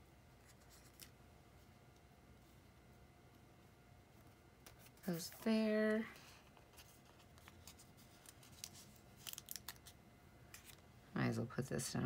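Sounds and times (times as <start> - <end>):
paper stickers handled: 0.4 - 1.2, 4.6 - 10.8
sticker peeled from backing: 6.8 - 10.8.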